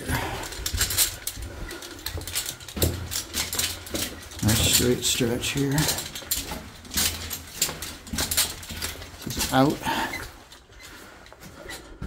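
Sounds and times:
footsteps on loose rock and gravel: 0:00.0 - 0:12.0.

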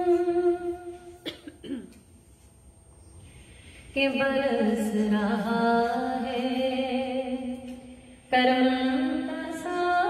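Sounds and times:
woman clearing throat: 0:01.2 - 0:02.0
woman coughing: 0:01.2 - 0:02.0.

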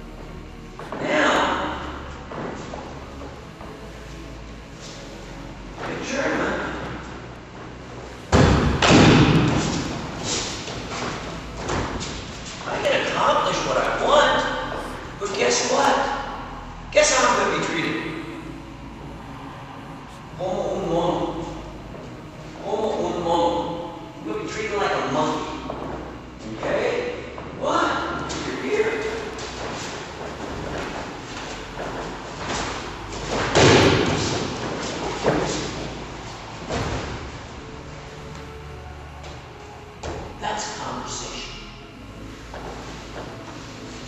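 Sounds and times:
person speaking: 0:00.8 - 0:02.2, 0:12.6 - 0:30.2.

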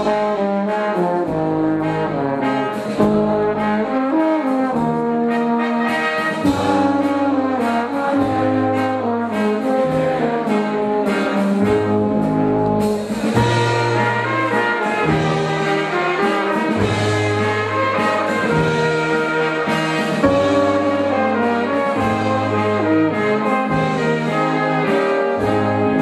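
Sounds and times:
brass band playing folk dance: 0:00.0 - 0:26.0.

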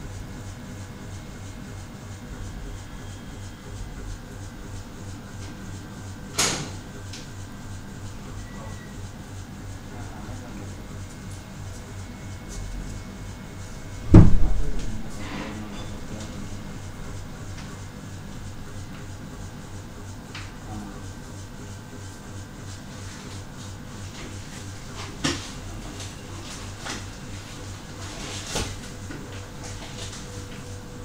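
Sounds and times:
steady low hum: 0:00.0 - 0:31.0
sharp knocks: 0:14.0 - 0:15.0
loud deep thump: 0:14.0 - 0:15.2.

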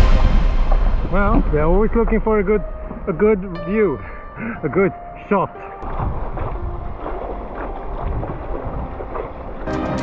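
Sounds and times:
wind buffeting microphone: 0:05.8 - 0:09.7
water sloshing around paddleboard: 0:05.8 - 0:09.9.

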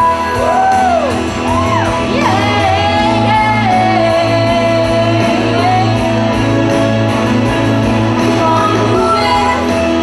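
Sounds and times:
bass: 0:00.0 - 0:10.0
keyboard chords: 0:00.0 - 0:10.0
woman singing: 0:02.0 - 0:06.6, 0:08.3 - 0:10.0.

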